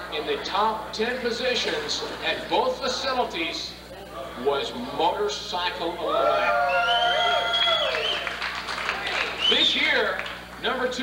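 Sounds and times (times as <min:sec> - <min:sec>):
long held whoop: 0:06.1 - 0:08.4
audience applauding: 0:06.5 - 0:10.8.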